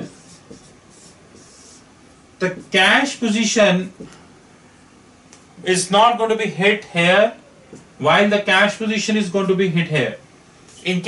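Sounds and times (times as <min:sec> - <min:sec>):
marker pen writing on board: 0:00.0 - 0:01.9, 0:02.5 - 0:02.8.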